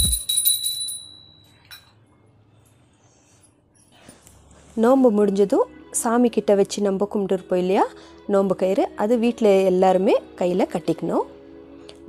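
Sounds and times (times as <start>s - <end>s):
hand bell ringing: 0.0s - 1.9s.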